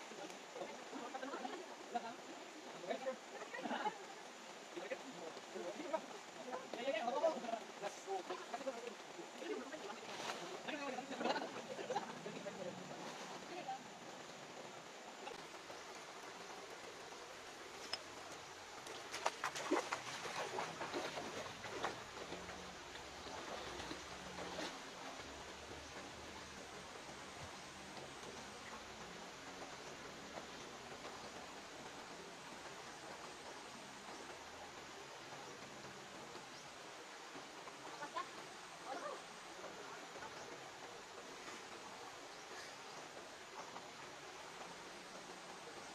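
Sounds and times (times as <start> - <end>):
river water running: 0.0 - 45.9.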